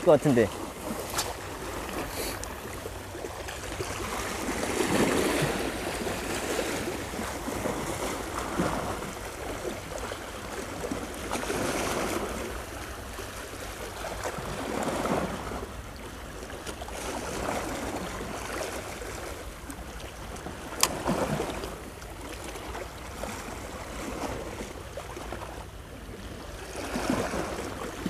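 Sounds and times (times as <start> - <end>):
waves washing over rocks: 0.0 - 19.4, 20.4 - 25.8, 26.6 - 28.0.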